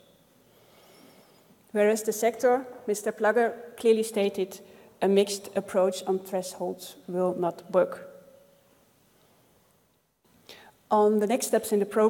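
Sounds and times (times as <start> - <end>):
soft intake of breath: 0.4 - 1.6, 10.4 - 10.8
person speaking: 1.7 - 8.1.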